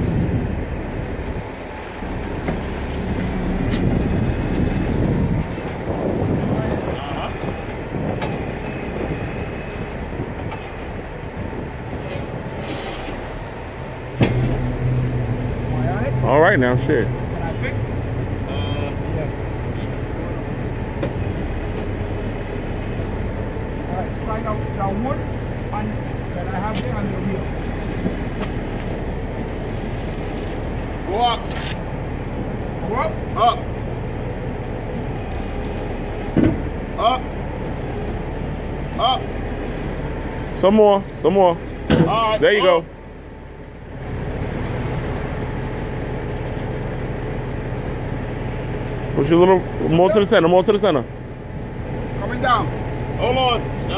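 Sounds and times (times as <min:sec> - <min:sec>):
truck engine running: 0:00.0 - 0:53.9
hydraulic lift raising: 0:02.2 - 0:19.0.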